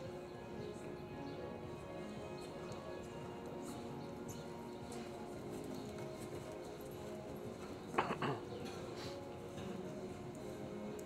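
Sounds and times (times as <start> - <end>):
music with held notes: 0.0 - 11.0.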